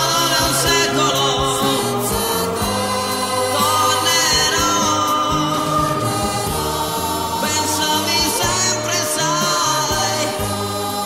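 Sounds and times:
pop ballad with band: 0.0 - 11.0
voices singing chorus together: 0.0 - 11.0.

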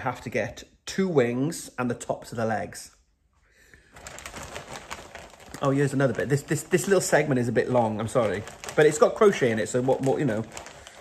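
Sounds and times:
rustling with quick clicks: 3.9 - 7.2, 8.0 - 11.0.

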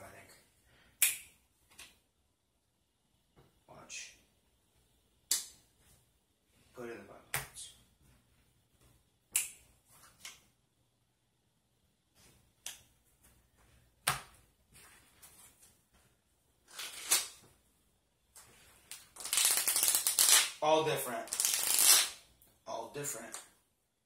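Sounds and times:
cards rustling being gathered: 16.7 - 17.5, 18.4 - 20.5, 21.2 - 22.1.

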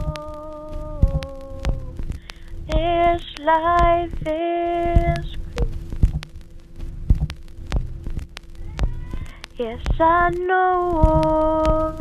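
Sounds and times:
held low note: 0.0 - 12.0
sharp clicks: 0.0 - 12.0
kick drum beat: 0.9 - 3.1, 3.7 - 10.2, 11.0 - 11.9.

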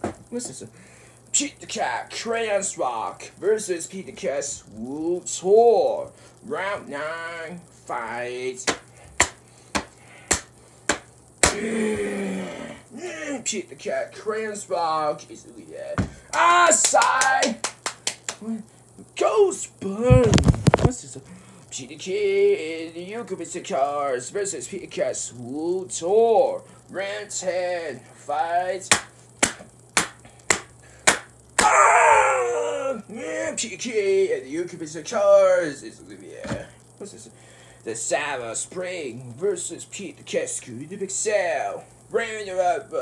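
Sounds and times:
books slapped together: 8.7 - 11.6, 28.9 - 31.7
man wailing: 11.4 - 13.4, 31.6 - 33.5
man's drawn-out vocal sound: 11.4 - 13.5, 31.6 - 33.6.

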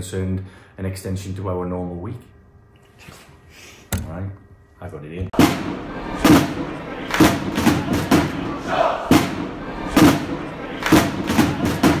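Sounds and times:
heavy drum-like thuds: 5.4 - 12.0
crowd chanting: 5.6 - 12.0.

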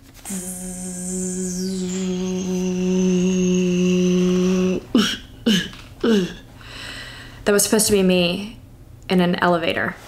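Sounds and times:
woman humming steady note: 0.3 - 6.5.

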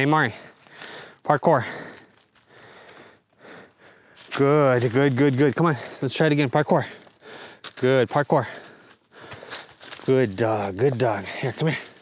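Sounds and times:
faint breathing: 0.3 - 4.4, 6.8 - 7.8, 8.4 - 10.0.

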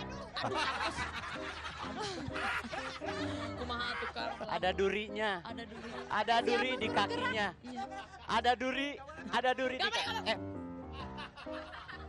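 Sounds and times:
person snickering laughs: 0.4 - 3.6.

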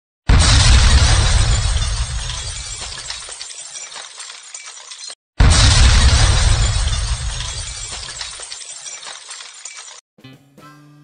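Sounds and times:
glass shattering crash: 0.3 - 10.0
tinkling glass debris: 0.9 - 5.2, 5.8 - 10.0.

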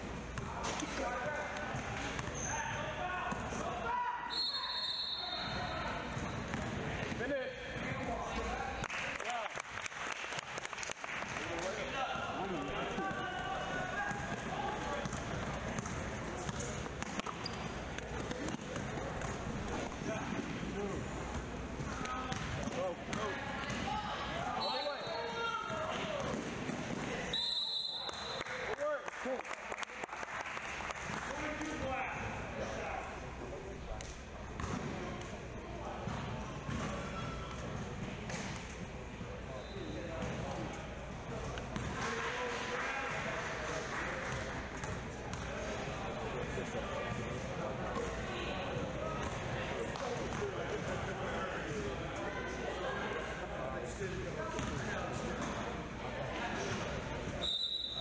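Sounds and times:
chatter of people in hall: 0.0 - 58.0
shrill whistle blasts: 4.3 - 5.7, 27.3 - 28.4, 57.4 - 58.0.

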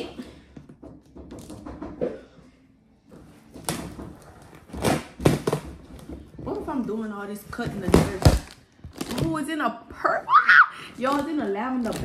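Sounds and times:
tape ripping: 7.8 - 9.4, 11.0 - 12.0.

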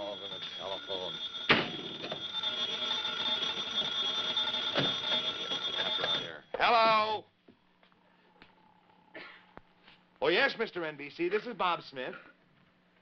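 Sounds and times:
telephone bell ringing: 0.0 - 6.4.

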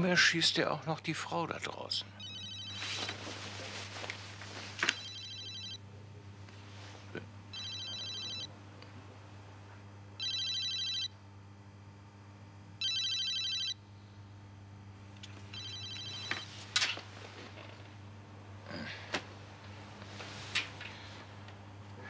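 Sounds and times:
electronic telephone ringing: 2.2 - 3.1, 4.9 - 5.8, 7.5 - 8.5, 10.2 - 11.2, 12.8 - 13.8, 15.5 - 16.6.

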